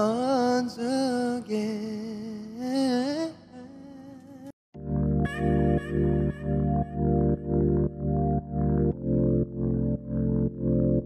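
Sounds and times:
person humming with vibrato: 5.2s - 7.4s.

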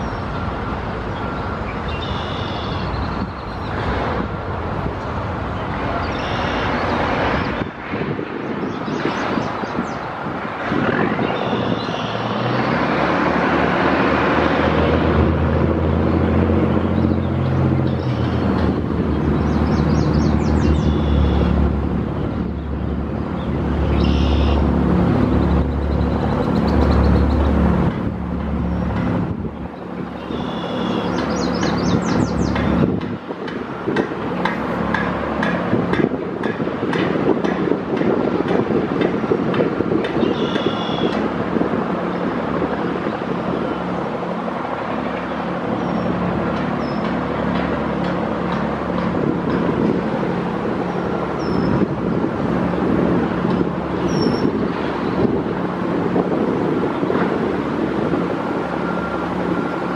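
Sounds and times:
road traffic noise: 0.0s - 59.9s
heavy vehicle engine drone: 9.8s - 59.9s.

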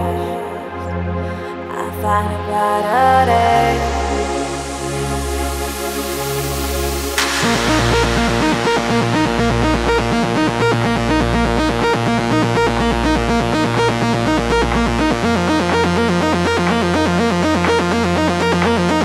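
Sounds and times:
synthesizer arpeggio: 3.0s - 19.0s
held bass note: 7.2s - 19.0s.

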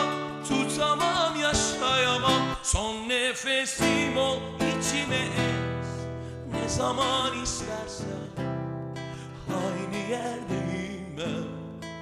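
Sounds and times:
man singing a slow ballad: 0.0s - 12.0s
strummed acoustic guitar: 0.0s - 12.0s.

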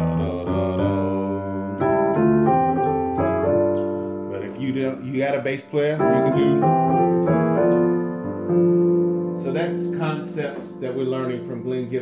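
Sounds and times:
gospel piano chords: 0.0s - 12.0s.

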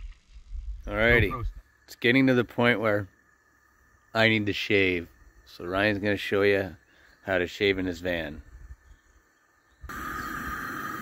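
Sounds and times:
gas stove burner hissing: 1.6s - 11.0s.

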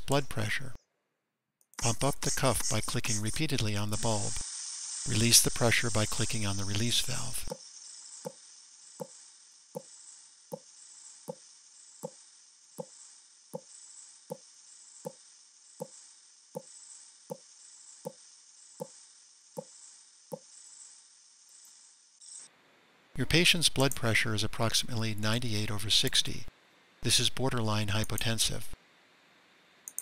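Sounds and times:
air hissing from valve: 1.8s - 7.6s.

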